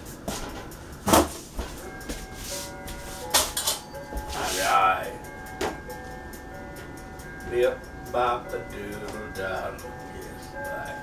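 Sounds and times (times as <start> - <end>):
knocks from kitchen work: 0.5 - 1.4.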